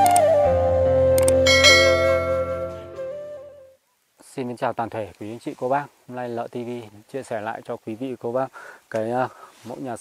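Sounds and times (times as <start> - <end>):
jingle music with flute-like note: 0.0 - 3.7
bell chime: 1.5 - 2.8.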